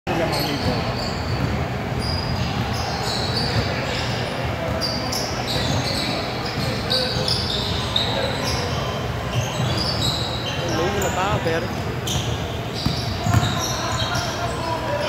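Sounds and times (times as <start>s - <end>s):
sneakers squeaking: 0.1s - 15.0s.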